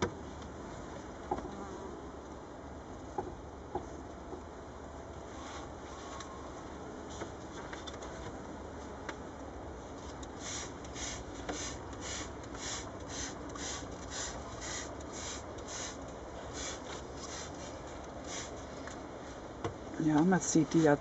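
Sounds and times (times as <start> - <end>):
spray bottle hissing sprays: 10.4 - 17.7, 18.3 - 18.6.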